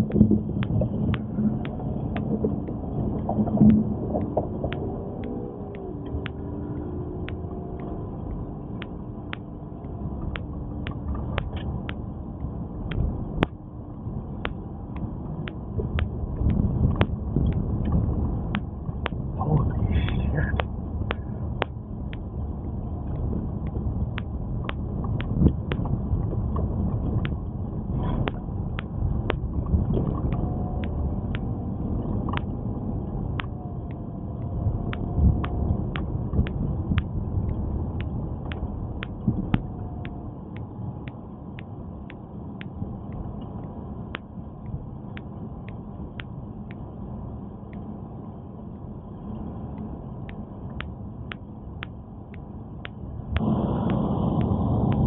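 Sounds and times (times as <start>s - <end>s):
sharp ticks: 0.0s - 46.9s, 49.7s - 55.0s
car tyres and engine rumble: 0.0s - 55.0s.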